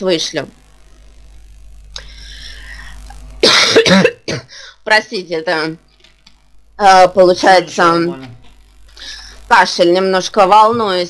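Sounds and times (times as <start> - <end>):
woman speaking: 0.0 - 0.6, 4.7 - 5.8, 6.8 - 8.4, 9.1 - 11.0
woman coughing loudly: 3.4 - 4.6.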